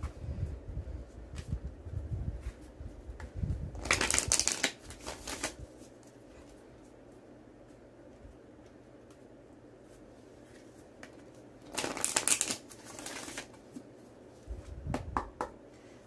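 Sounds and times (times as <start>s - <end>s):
papery card riffle: 3.8s - 5.6s
cards shuffling: 3.8s - 6.2s, 10.4s - 13.8s.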